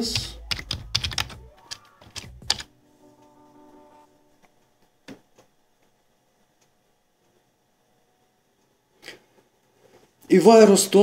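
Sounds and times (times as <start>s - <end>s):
typing on computer keyboard: 0.2s - 2.7s.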